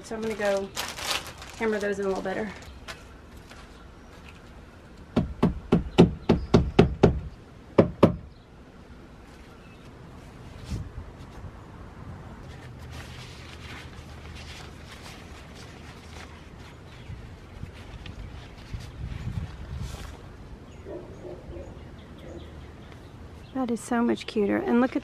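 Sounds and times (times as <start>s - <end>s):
fabric flag rustling: 0.0s - 4.6s, 12.4s - 20.4s.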